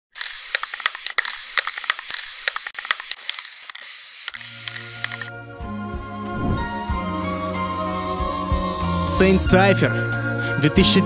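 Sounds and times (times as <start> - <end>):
sharp clicks: 0.2 - 5.3
spray can hissing: 0.2 - 5.3.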